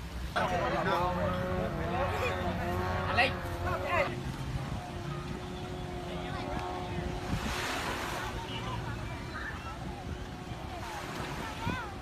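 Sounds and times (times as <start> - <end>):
small waves washing on sand: 0.0 - 12.0
wind buffeting microphone: 0.4 - 12.0.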